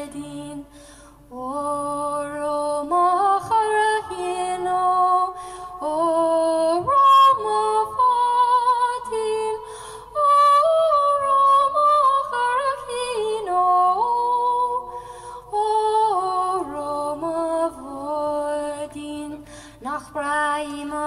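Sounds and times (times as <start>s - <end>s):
woman singing unaccompanied: 0.0s - 21.0s.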